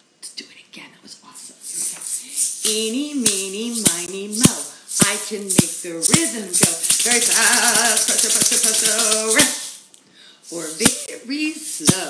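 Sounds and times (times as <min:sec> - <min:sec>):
woman whispering: 0:00.2 - 0:01.9
woman chanting: 0:02.5 - 0:09.7, 0:10.5 - 0:12.0.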